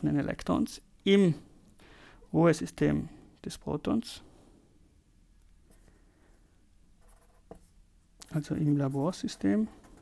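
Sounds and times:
marker pen scratching on paper: 7.0s - 7.8s, 8.4s - 10.0s.

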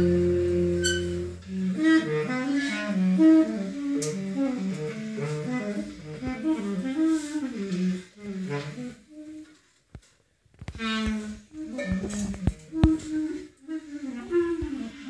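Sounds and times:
clarinet: 0.0s - 9.8s, 10.7s - 15.0s
saxophone: 0.0s - 9.8s, 10.8s - 15.0s.

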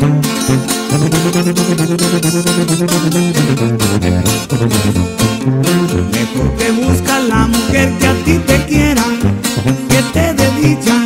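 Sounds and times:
bass line: 0.0s - 11.0s
guitar band music: 0.0s - 11.0s.

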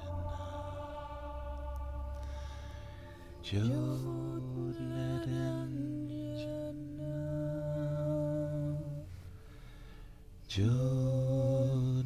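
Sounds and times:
deep voice chanting held tone: 0.0s - 9.1s.

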